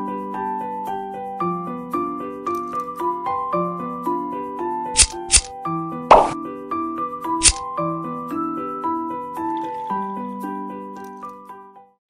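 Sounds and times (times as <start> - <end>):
scissors snipping plastic: 5.0 - 5.5, 7.4 - 7.6.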